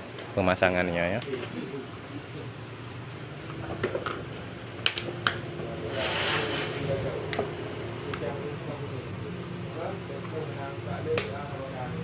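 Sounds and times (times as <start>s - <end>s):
brief hiss: 5.9s - 6.9s.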